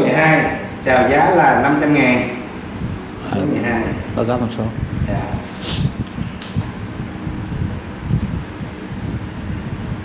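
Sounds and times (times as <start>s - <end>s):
air rumbling on microphone: 0.0s - 10.0s.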